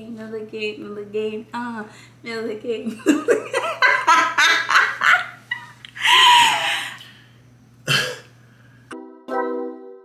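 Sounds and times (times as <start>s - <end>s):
woman laughing loudly: 2.9s - 7.0s.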